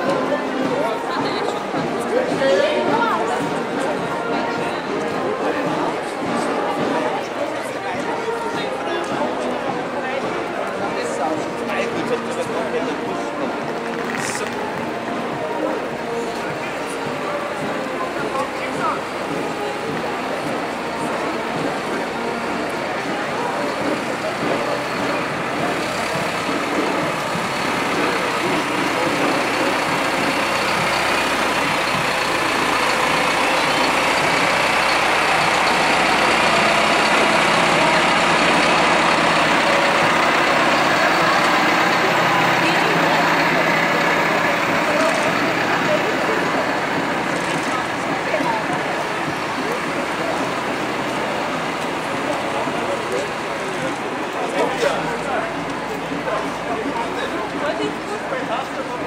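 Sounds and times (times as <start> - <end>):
crowd murmur: 0.0 - 59.0
tractor engine passing: 0.0 - 59.0.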